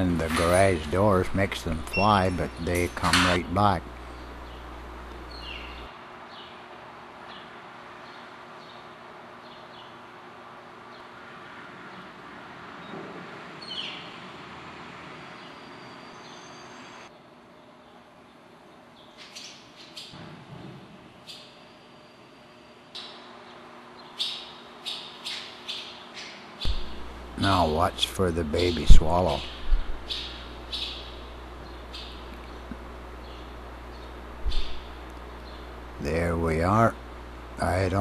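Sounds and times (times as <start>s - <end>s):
swallows chirping and twittering: 0.0s - 10.0s, 13.6s - 14.2s, 15.2s - 20.2s, 21.2s - 36.7s
steady background hiss: 0.0s - 38.0s.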